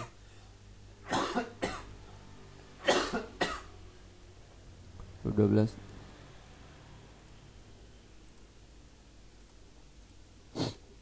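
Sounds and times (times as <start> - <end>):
person coughing: 1.0 - 1.9, 2.8 - 3.7.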